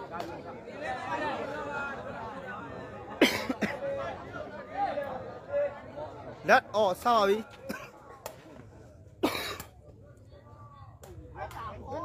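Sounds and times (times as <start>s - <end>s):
faint crowd voices: 0.0s - 12.0s
loud cough: 3.2s - 3.8s, 9.2s - 9.7s.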